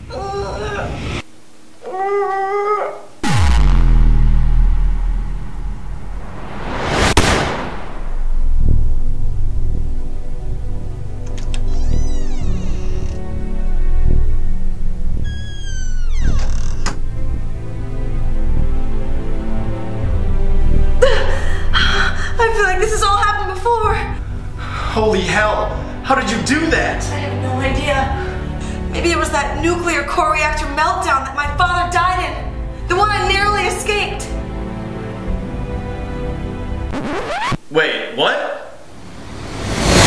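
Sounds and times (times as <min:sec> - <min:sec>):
person crying out: 0:00.0 - 0:01.0
woman whining: 0:00.0 - 0:01.0, 0:11.5 - 0:13.2
sharp crack: 0:03.2 - 0:08.6
rising whoosh: 0:03.2 - 0:09.1, 0:38.8 - 0:40.0
falling sweep into deep rumble: 0:03.2 - 0:09.3, 0:38.9 - 0:40.0
low steady hum: 0:03.2 - 0:11.2.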